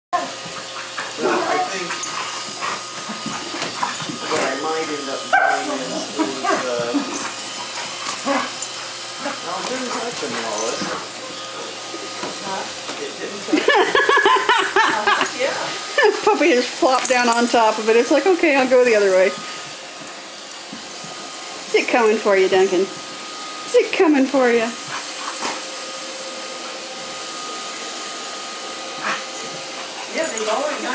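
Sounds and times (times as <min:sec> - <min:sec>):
dogs play-fighting: 0:00.2 - 0:30.9
robot vacuum whirring: 0:00.2 - 0:30.9
dog barking: 0:05.3 - 0:05.8.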